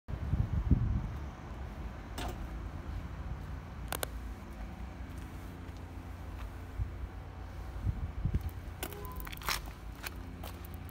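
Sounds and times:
wind rumbling on microphone: 0:00.1 - 0:04.1, 0:06.6 - 0:09.9.

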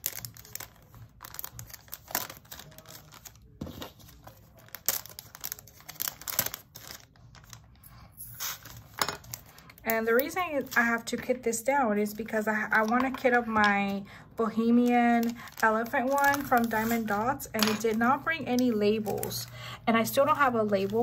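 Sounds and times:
plastic bags crinkling: 0:00.0 - 0:07.8, 0:08.4 - 0:11.2, 0:12.2 - 0:21.0.

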